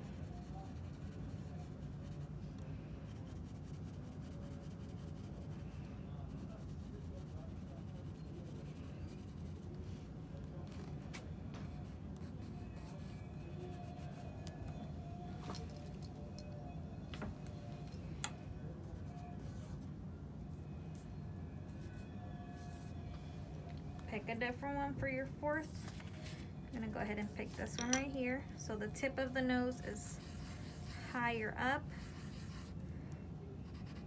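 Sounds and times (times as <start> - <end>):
pencil scratching on paper: 0.0 - 2.3, 3.1 - 5.7, 6.3 - 9.7, 11.7 - 14.3, 30.0 - 32.8, 33.6 - 34.0
steady low hum: 0.0 - 34.0.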